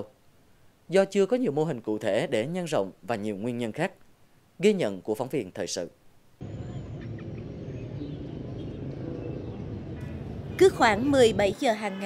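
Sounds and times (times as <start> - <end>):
outdoor noise wash: 0.0 - 12.0
low hum: 6.4 - 11.3.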